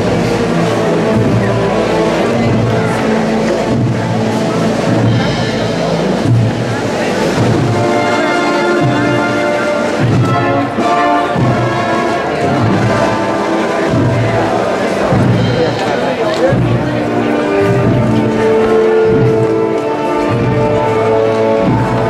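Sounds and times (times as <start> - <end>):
low drum beats: 0.0 - 22.0
processional band music: 0.0 - 22.0.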